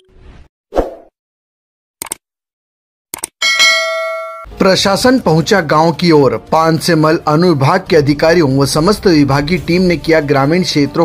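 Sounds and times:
bright bell chime: 3.4s - 4.5s.

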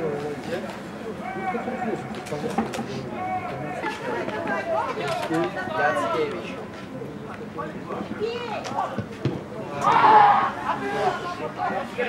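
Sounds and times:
people calling and shouting: 0.0s - 12.0s.

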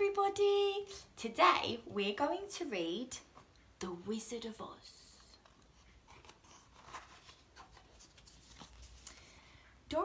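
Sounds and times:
book pages rustling: 5.3s - 9.3s.

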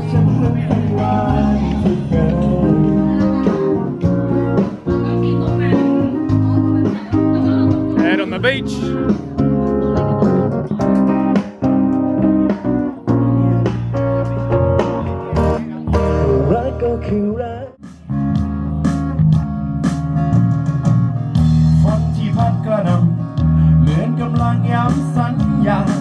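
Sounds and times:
person singing: 0.0s - 8.3s, 15.8s - 17.8s
acoustic guitars strumming: 0.0s - 26.0s
keyboard: 0.0s - 26.0s.

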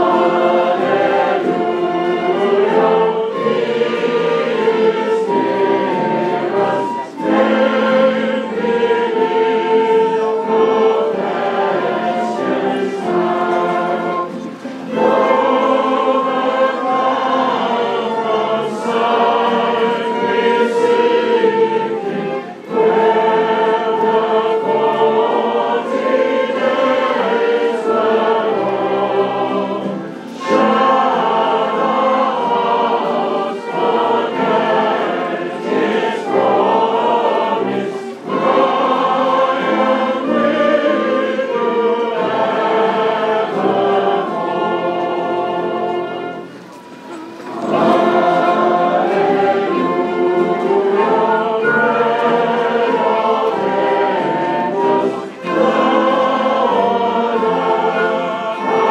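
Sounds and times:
choir singing a hymn: 0.0s - 58.9s.

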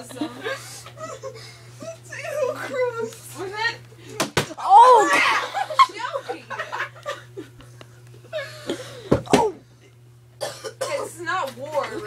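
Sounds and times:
person coughing: 10.4s - 11.1s.

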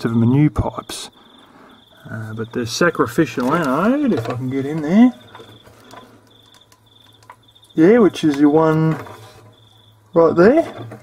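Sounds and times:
insect chirping trills: 0.0s - 11.0s.

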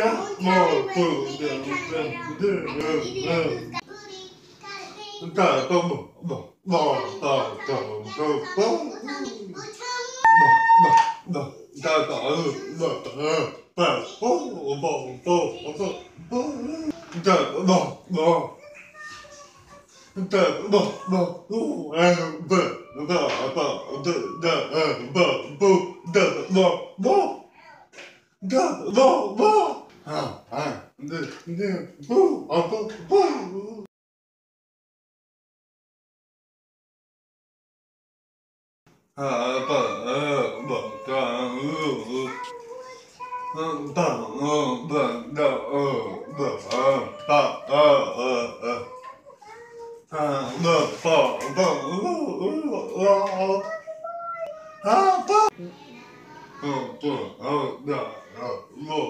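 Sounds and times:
man sounding out syllables: 10.3s - 11.6s, 20.2s - 27.4s, 39.2s - 42.4s, 43.6s - 48.9s, 50.2s - 53.6s, 56.6s - 59.0s.

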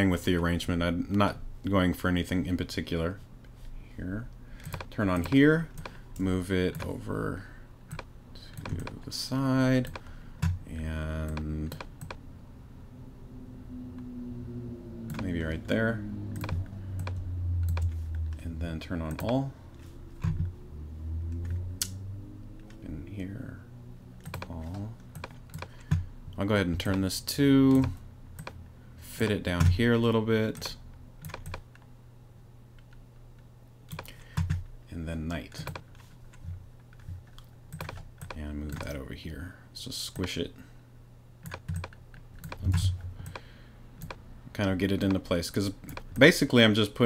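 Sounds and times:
low steady hum: 0.0s - 47.0s
mouse and keyboard clicks: 4.6s - 6.0s, 7.9s - 9.0s, 15.1s - 15.3s, 16.4s - 18.4s, 24.2s - 26.0s, 37.0s - 38.9s, 41.4s - 44.2s.

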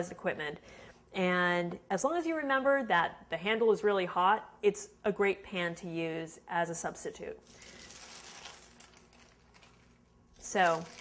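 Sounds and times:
paper rustling: 7.5s - 11.0s.

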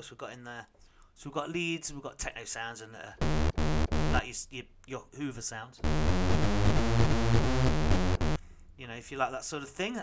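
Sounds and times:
rave synth notes: 3.2s - 4.2s, 5.8s - 8.4s.

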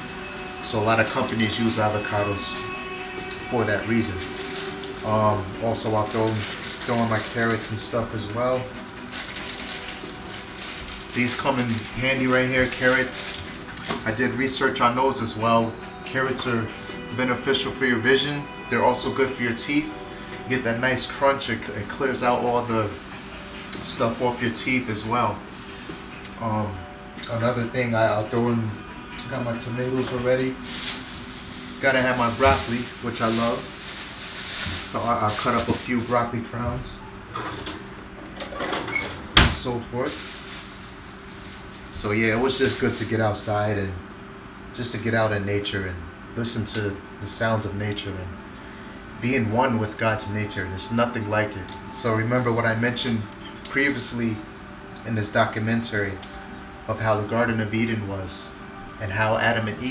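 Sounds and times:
low steady hum: 0.0s - 59.9s
rustling of food: 3.8s - 5.1s, 5.7s - 14.0s, 30.5s - 36.4s, 40.0s - 43.3s
footsteps: 30.0s - 36.8s, 39.6s - 43.1s
faint rustling: 40.1s - 43.2s.

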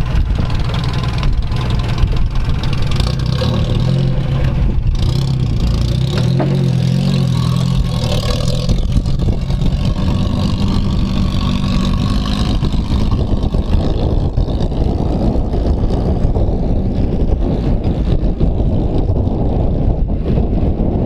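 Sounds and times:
truck engine working: 0.0s - 21.0s.

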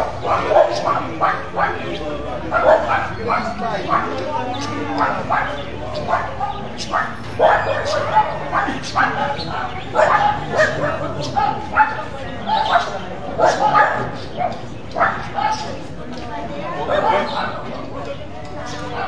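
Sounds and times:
dog barking: 0.0s - 14.2s, 14.9s - 15.8s, 16.8s - 17.5s
people talking: 0.0s - 19.0s.

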